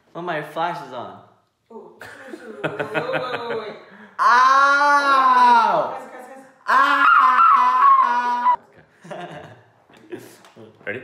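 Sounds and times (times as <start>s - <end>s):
person laughing wails: 6.7s - 8.6s.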